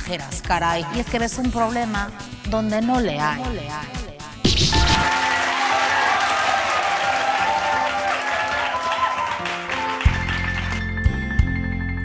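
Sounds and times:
bass and drums: 0:04.4 - 0:05.1
audience applause: 0:05.0 - 0:10.9.

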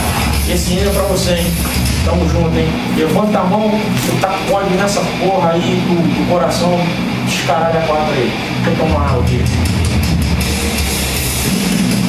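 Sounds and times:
drum kit playing: 0:00.0 - 0:05.3.

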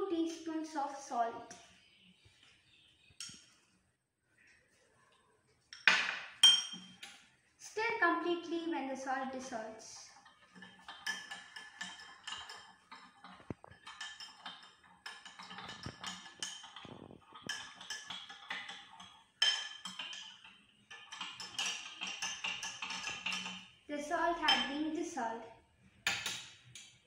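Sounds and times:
spoon clinking in glass: 0:05.8 - 0:07.2, 0:19.4 - 0:23.6, 0:24.4 - 0:24.8.

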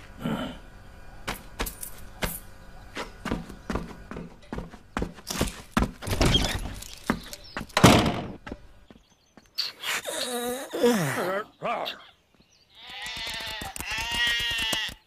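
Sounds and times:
knocks and clatter: 0:03.3 - 0:08.7
cartoon sheep bleating: 0:12.8 - 0:15.0.

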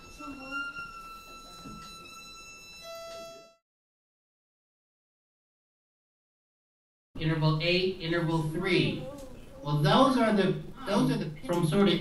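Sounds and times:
violin harmonic high note: 0:00.0 - 0:03.6.

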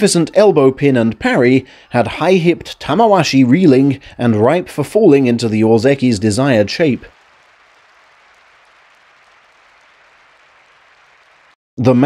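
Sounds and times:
faint crowd applause: 0:06.3 - 0:11.6.

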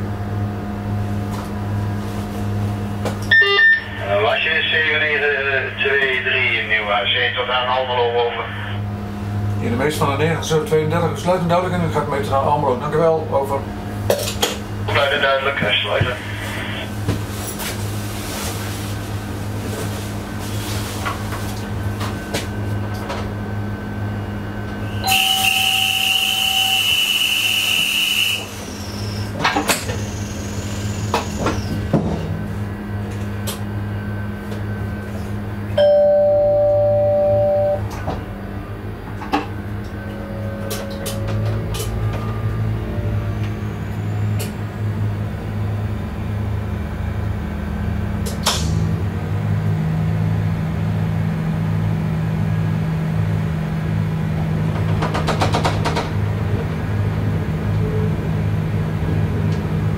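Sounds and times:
shrill high whistle tone: 0:03.3 - 0:04.0, 0:25.0 - 0:29.2
two-tone electronic signal: 0:03.3 - 0:04.1, 0:25.0 - 0:28.5, 0:35.8 - 0:38.0
low equipment hum: 0:28.4 - 0:55.0.

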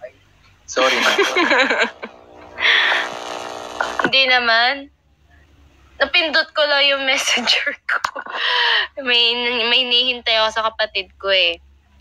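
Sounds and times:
buzzy electric drone: 0:00.9 - 0:04.2.

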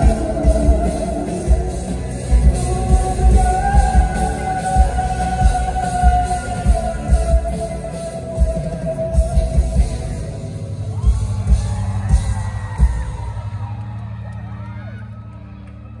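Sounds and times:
live rock band playing: 0:00.0 - 0:13.8
drum beats: 0:00.0 - 0:14.0
audience screaming and cheering: 0:00.0 - 0:16.0.

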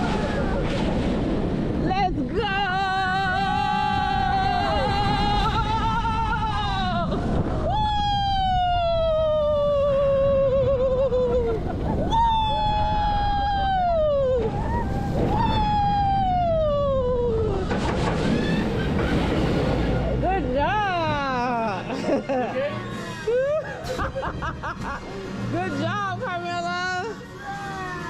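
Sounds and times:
roller coaster rumble: 0:00.0 - 0:28.0.

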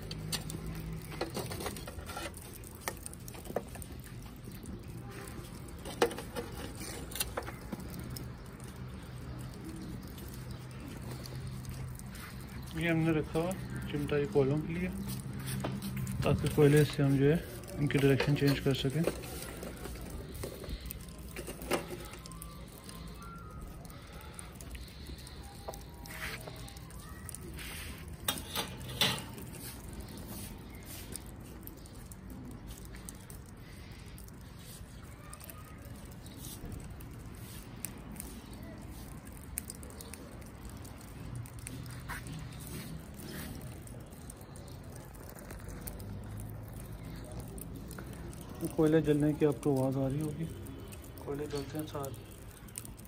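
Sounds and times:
charcoal crackling and popping: 0:00.0 - 0:53.0.

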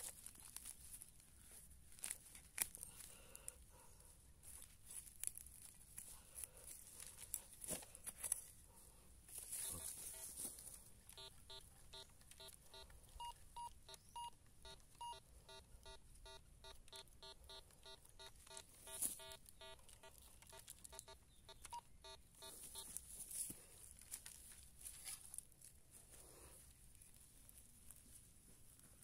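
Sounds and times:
metal detector beeping rapidly: 0:09.6 - 0:10.4, 0:11.2 - 0:22.9.

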